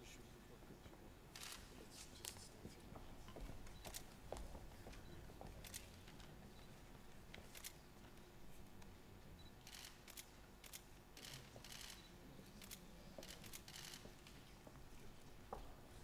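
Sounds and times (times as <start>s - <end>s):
hush of large hall: 0.0s - 16.0s
camera shutters clicking: 9.6s - 12.0s, 12.6s - 14.1s.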